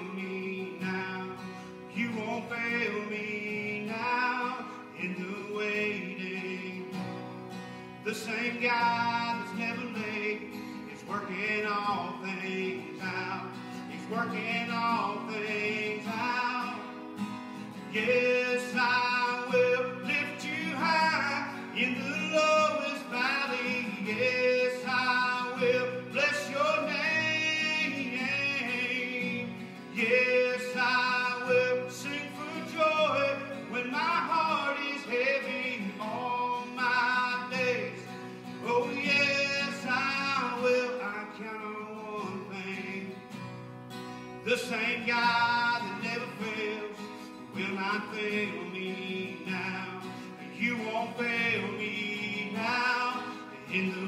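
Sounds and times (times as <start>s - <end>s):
man singing: 0.0s - 43.6s, 44.3s - 54.0s
strummed acoustic guitar: 0.0s - 54.0s.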